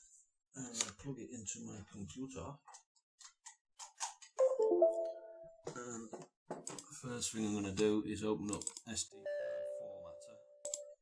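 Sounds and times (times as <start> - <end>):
computer device-connected chime: 4.4 - 5.6.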